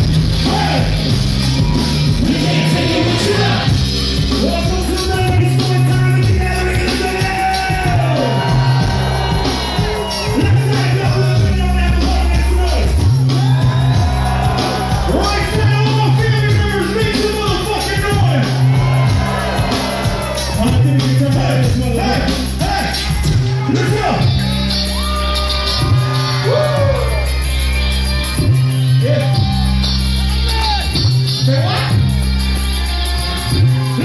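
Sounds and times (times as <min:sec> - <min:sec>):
heavy bass line: 0:00.0 - 0:34.0
loud live band music: 0:00.0 - 0:34.0
shouted vocals: 0:00.4 - 0:01.0, 0:01.6 - 0:03.7, 0:06.8 - 0:11.5.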